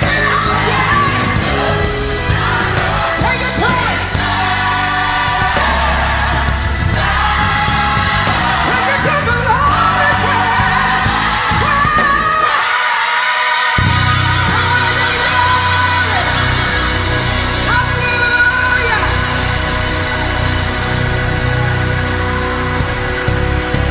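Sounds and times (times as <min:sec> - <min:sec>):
steady bass line: 0:00.0 - 0:12.7, 0:13.8 - 0:23.9
gospel song with singing voice: 0:00.0 - 0:23.9.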